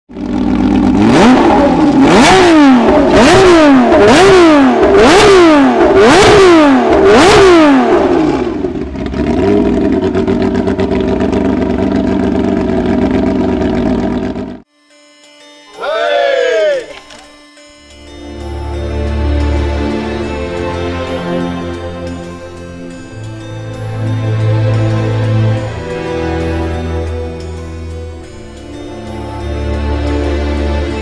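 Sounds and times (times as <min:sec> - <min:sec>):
rally car engine revving and idling: 0:00.1 - 0:14.6.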